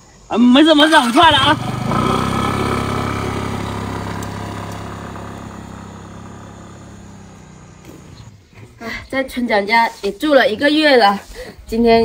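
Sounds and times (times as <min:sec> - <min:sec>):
motor scooter engine: 0:00.7 - 0:08.6.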